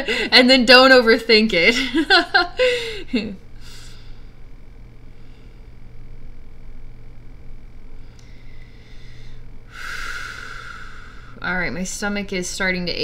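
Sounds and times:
woman breathing: 0.0s - 0.4s, 2.6s - 4.4s, 5.0s - 5.8s, 7.9s - 11.4s
low hum: 0.0s - 13.0s.

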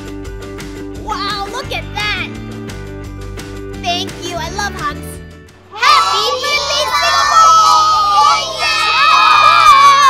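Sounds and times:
children shouting and cheering: 5.6s - 10.0s.

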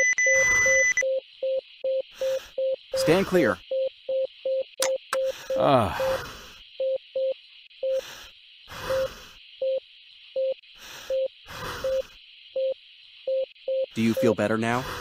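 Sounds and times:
cardiac monitor beeping: 0.0s - 6.2s, 6.8s - 8.1s, 8.8s - 9.8s, 10.4s - 14.8s
heavy breathing: 2.1s - 2.7s, 5.2s - 6.7s, 7.8s - 9.5s, 10.7s - 12.2s, 14.7s - 15.0s.

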